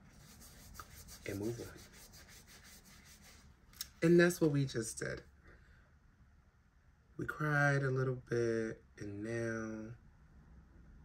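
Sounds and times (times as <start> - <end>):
paper tissue rubbing: 0.0 - 3.6.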